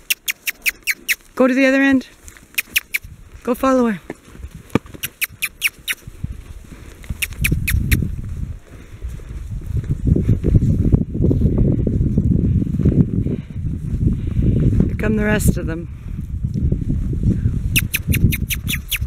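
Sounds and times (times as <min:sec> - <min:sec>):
sharp clicks: 0:00.0 - 0:01.2, 0:02.5 - 0:03.1, 0:04.8 - 0:06.0, 0:07.1 - 0:08.0, 0:17.8 - 0:19.0
hoof thuds and scuffing: 0:02.1 - 0:11.0.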